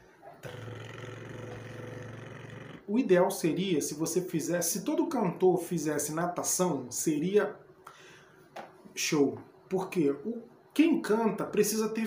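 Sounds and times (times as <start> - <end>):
man's rolled tongue trill: 0.4 - 2.9.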